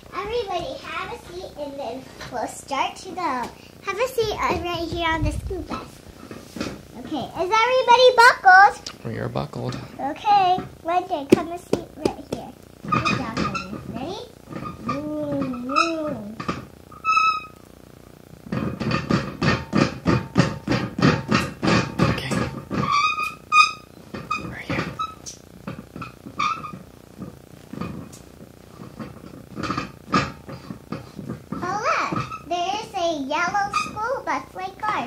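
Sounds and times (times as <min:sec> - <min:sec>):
child squeaking: 0:14.7 - 0:16.4.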